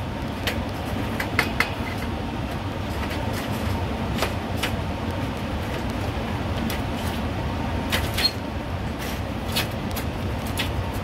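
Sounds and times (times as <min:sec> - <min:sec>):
low machinery rumble: 0:00.0 - 0:11.0.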